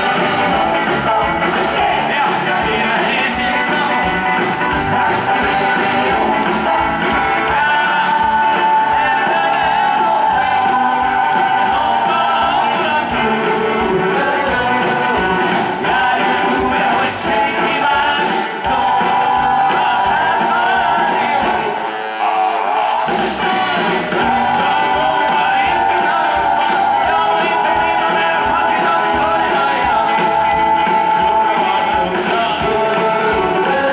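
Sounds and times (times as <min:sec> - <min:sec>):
man singing into a microphone: 0:00.0 - 0:22.8, 0:23.4 - 0:33.9
live rock and roll band: 0:00.0 - 0:33.9.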